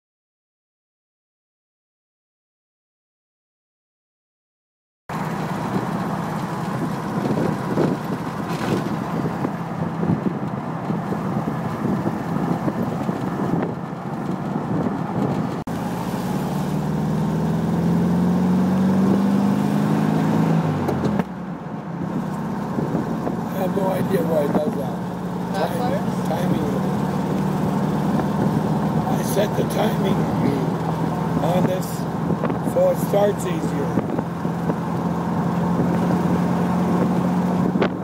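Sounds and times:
car engine running: 5.1 - 38.0.

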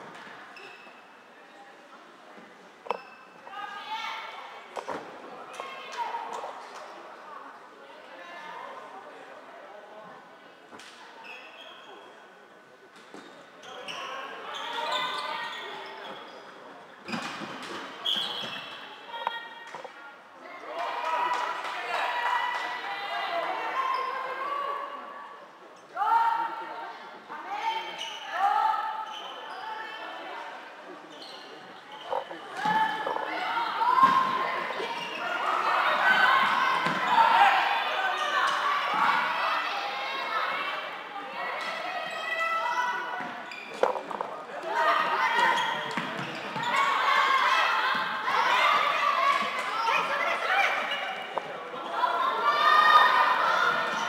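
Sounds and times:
players shouting in a hall: 20.4 - 30.6, 32.1 - 43.4, 44.5 - 54.0.

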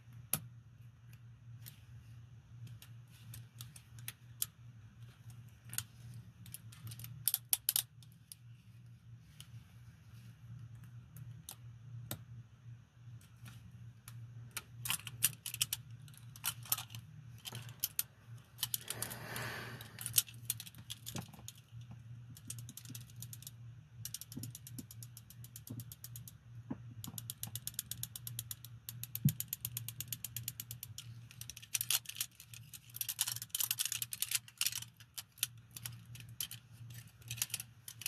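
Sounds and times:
steady low hum: 0.0 - 27.1.

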